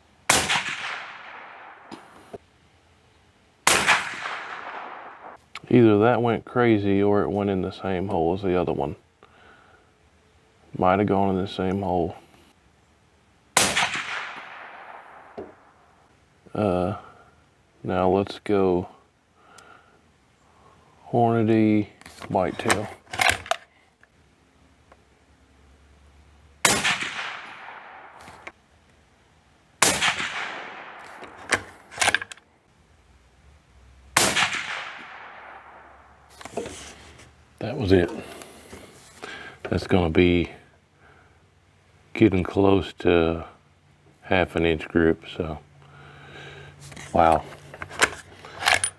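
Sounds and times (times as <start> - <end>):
suppressed rifle shot with echo: 0.3 - 2.4, 3.6 - 5.4, 13.6 - 15.9, 26.6 - 28.6, 29.8 - 32.2, 34.2 - 36.3
rifle bolt metallic clicks: 30.2 - 32.4, 47.8 - 48.9.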